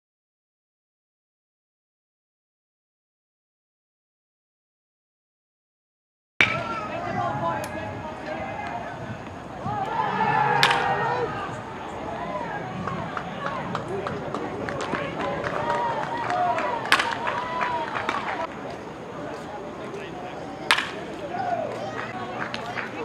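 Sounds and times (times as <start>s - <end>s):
baseball bat cracks: 6.4s - 6.8s, 10.6s - 11.1s, 16.8s - 18.5s, 20.6s - 21.2s.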